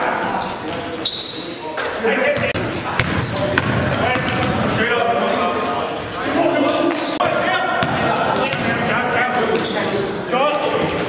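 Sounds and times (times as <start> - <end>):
players' voices: 0.0 - 11.0
short high squeak: 0.4 - 1.6
ball bouncing on court: 2.4 - 4.7, 6.9 - 8.8.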